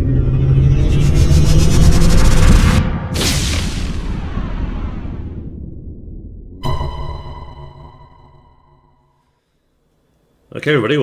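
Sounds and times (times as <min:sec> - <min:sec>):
whoosh: 0:00.0 - 0:08.4.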